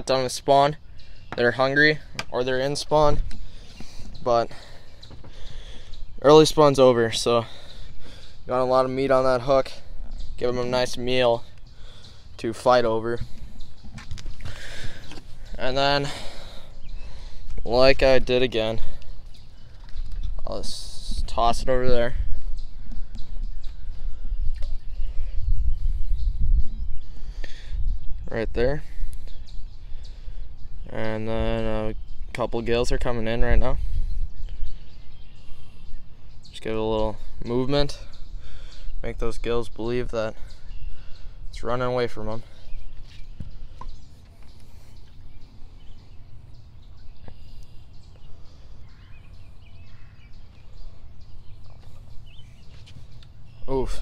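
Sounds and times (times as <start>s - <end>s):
faint bird chirps: 9.7s - 54.0s
low rumble on microphone: 12.8s - 39.8s.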